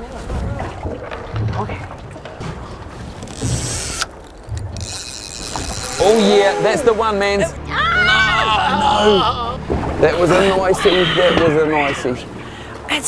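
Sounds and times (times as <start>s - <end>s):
spinning reel being wound: 3.3s - 6.3s
fishing line whirring off reel: 3.3s - 6.8s
low knocks of boat: 9.6s - 10.6s.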